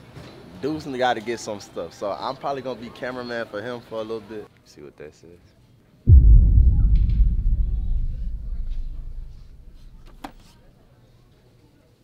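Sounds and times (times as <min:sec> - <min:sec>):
deep bass boom: 0:06.1 - 0:10.3.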